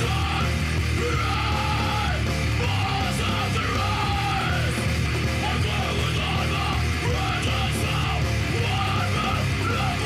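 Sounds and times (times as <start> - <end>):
heavy metal song: 0.0 - 10.0
singer yelling: 0.0 - 10.0.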